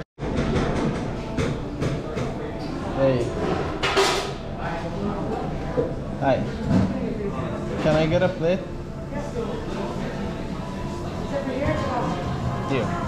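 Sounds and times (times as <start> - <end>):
faint background voices: 1.2 - 13.0
kitchen utensils and pans clattering: 3.2 - 4.4.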